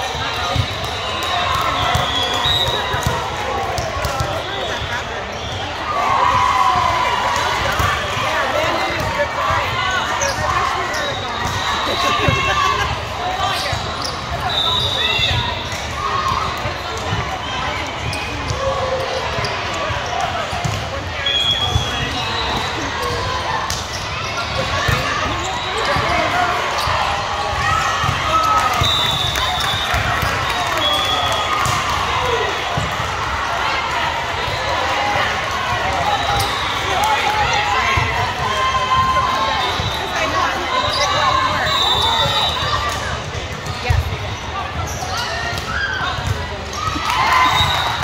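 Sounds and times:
voices talking and calling: 0.0s - 48.0s
sneaker squeaks: 0.4s - 3.1s, 3.8s - 5.8s, 9.9s - 12.7s, 13.4s - 15.8s, 17.4s - 31.7s, 39.6s - 42.9s, 43.6s - 48.0s.

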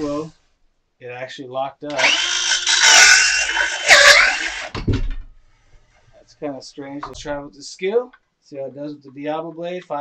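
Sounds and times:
person speaking: 0.0s - 0.4s, 6.2s - 10.0s
circular saw motor whine: 2.0s - 4.7s.

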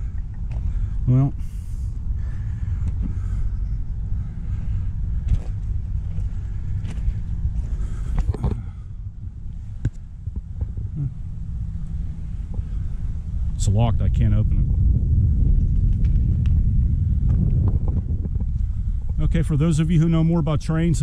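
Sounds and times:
wind rumble on microphone: 0.0s - 21.0s
footsteps on gravel: 4.6s - 8.6s.

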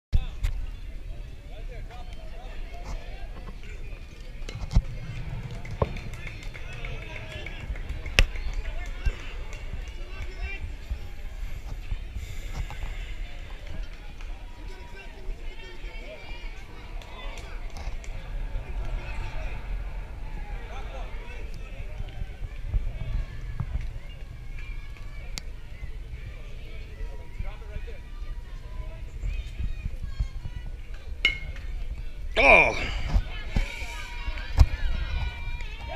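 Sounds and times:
steady low rumble: 0.2s - 35.9s
voices and chatter: 0.2s - 35.9s.

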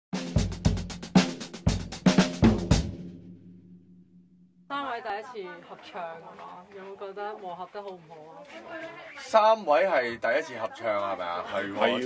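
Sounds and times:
drum-kit hits: 0.2s - 4.0s.

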